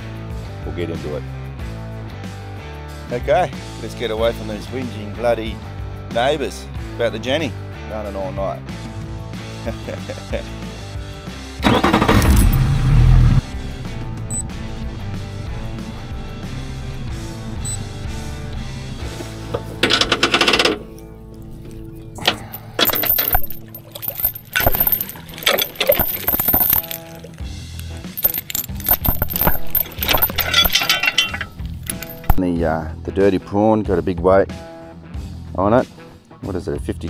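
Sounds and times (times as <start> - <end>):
background music: 0.0 - 37.0
anchor chain clinking and rattling: 11.8 - 12.6, 19.1 - 32.4
outboard engine rumble: 11.8 - 32.4.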